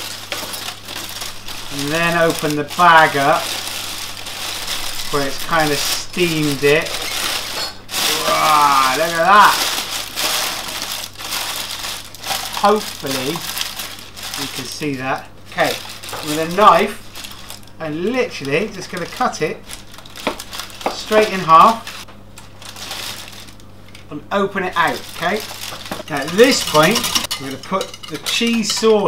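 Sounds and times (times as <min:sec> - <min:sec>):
baking parchment crinkling: 0:00.0 - 0:29.0
steady low hum: 0:00.0 - 0:29.0
tinfoil rustling: 0:00.0 - 0:29.0.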